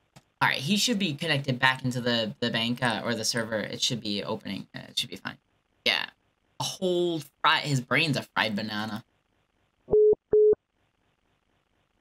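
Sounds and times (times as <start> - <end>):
short telephone beeps: 9.9 - 10.6.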